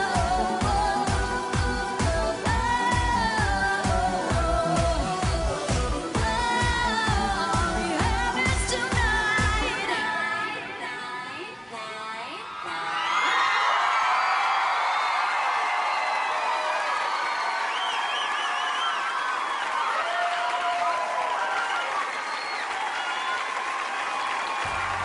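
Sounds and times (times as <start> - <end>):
audience applauding: 12.9 - 25.0.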